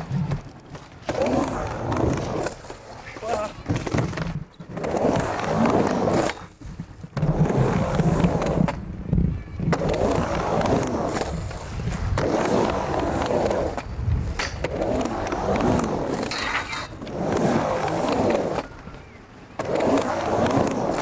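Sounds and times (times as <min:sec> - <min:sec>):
skateboard wheels rolling on ramp: 0:00.0 - 0:21.0.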